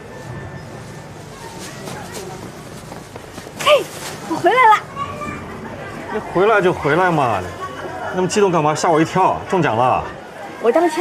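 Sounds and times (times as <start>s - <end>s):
market crowd murmur: 0.0s - 11.0s.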